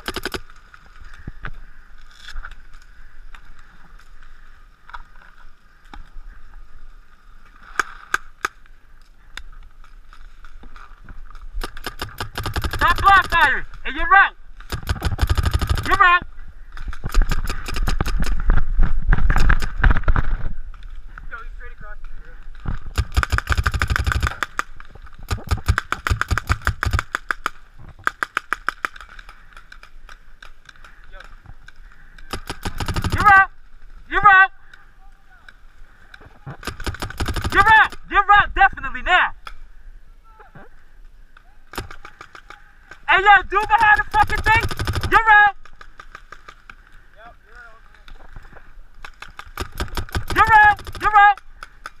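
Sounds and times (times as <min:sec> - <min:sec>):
paintball markers firing: 0:00.0 - 0:00.6, 0:11.6 - 0:13.5, 0:14.6 - 0:16.2, 0:16.8 - 0:18.5, 0:22.9 - 0:31.4, 0:32.2 - 0:33.4, 0:36.6 - 0:38.1, 0:41.7 - 0:43.1, 0:43.7 - 0:46.8, 0:49.0 - 0:52.0
paintball marker firing: 0:23.0 - 0:29.1, 0:32.3 - 0:33.3, 0:41.7 - 0:43.0, 0:49.0 - 0:52.0.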